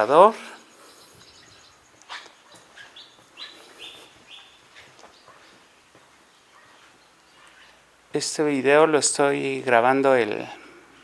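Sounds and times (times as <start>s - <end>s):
faint bird chirps: 0.1s - 8.0s.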